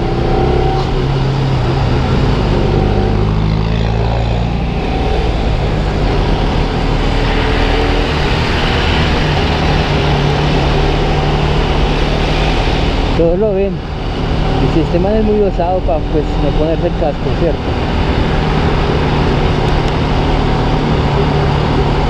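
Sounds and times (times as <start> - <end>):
wind rush: 0.0 - 22.0.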